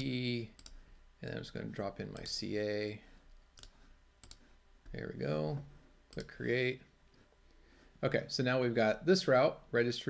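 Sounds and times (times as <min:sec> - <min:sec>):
computer mouse clicking: 0:00.0 - 0:00.8, 0:03.5 - 0:04.5, 0:06.1 - 0:06.4.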